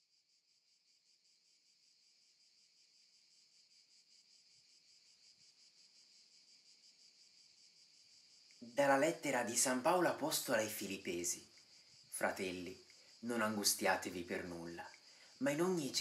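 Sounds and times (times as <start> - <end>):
faint crickets chirring: 0.0 - 16.0.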